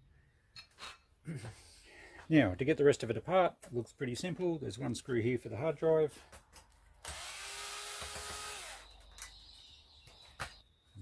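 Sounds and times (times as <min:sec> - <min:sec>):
cordless drill motor: 0:07.0 - 0:09.0.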